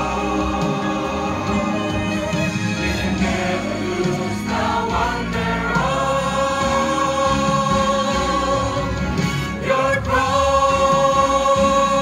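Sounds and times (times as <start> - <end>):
church choir singing a hymn: 0.0 - 12.0.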